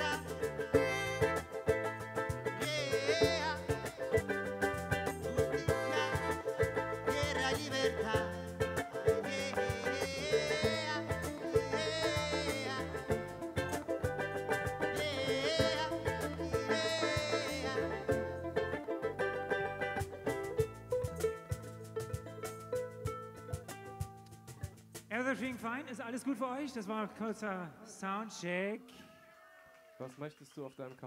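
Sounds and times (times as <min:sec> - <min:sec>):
electric bass: 0:00.0 - 0:25.1
fiddle melody: 0:00.0 - 0:25.5
cajon strokes: 0:00.0 - 0:25.8
strummed guitar: 0:00.0 - 0:25.8.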